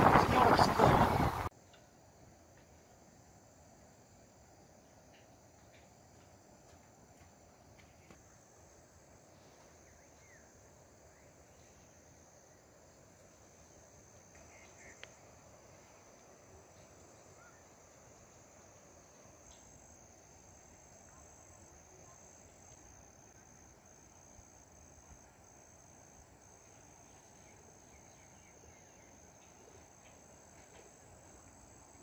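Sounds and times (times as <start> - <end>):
insects droning: 0.0 - 32.0.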